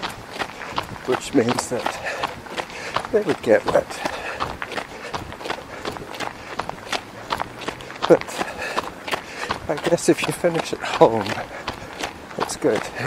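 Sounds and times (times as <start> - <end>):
running footsteps: 0.0 - 13.0.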